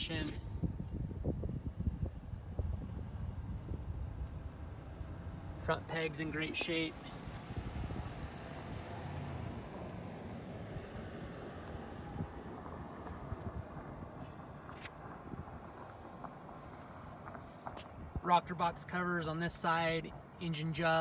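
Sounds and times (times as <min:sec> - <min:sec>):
steady low rumble: 0:00.0 - 0:14.3.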